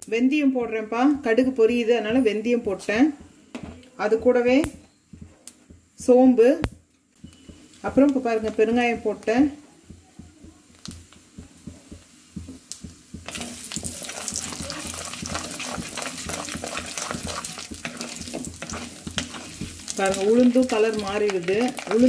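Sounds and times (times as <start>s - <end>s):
seeds sizzling and crackling in oil: 0.0s - 22.0s
hot oil ticking: 6.6s - 22.0s
wooden spatula stirring: 7.2s - 22.0s.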